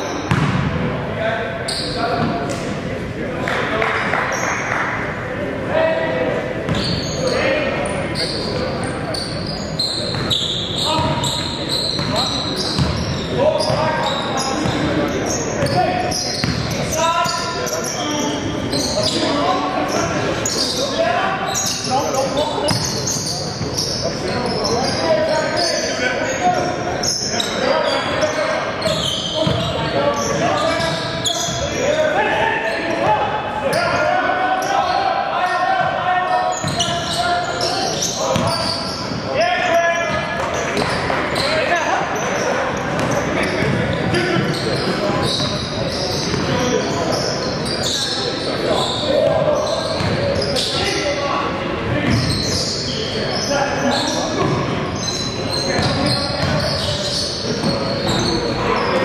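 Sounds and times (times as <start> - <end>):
basketball bouncing on hardwood: 0.3 - 0.7.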